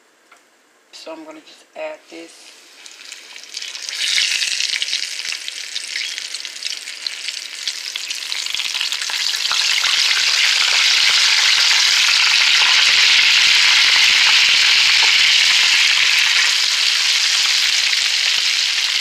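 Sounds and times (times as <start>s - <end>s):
chicken frying in hot grease: 2.7s - 19.0s.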